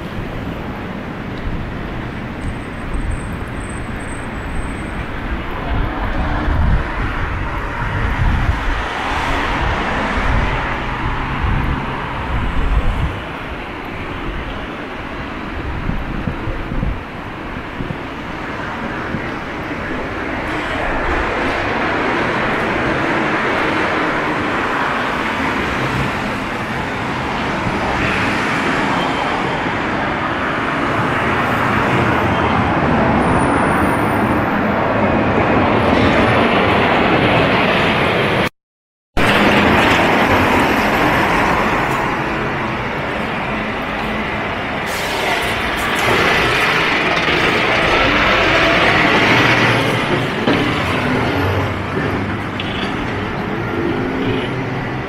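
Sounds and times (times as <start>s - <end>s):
cars passing on busy street: 0.0s - 38.5s, 39.2s - 55.0s.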